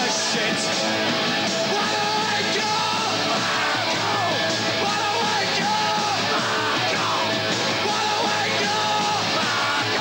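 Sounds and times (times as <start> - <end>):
punk rock band playing: 0.0 - 10.0
shouted vocals: 0.0 - 10.0.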